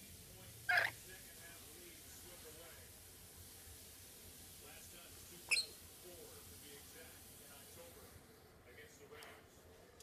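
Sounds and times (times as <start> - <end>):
parrot sharp call: 0.7 - 1.0, 5.5 - 5.8.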